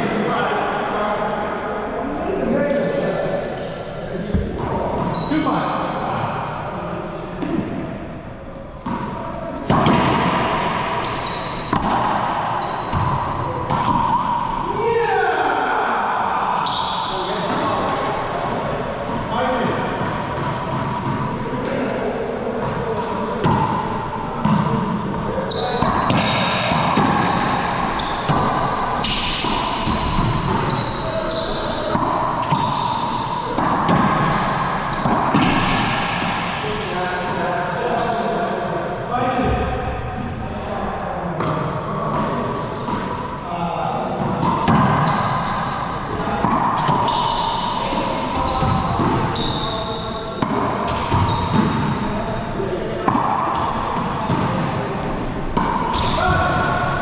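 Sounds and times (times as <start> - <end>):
racquetball hits echoing: 3.6 - 6.6, 8.8 - 15.0, 16.6 - 38.3, 41.4 - 57.0.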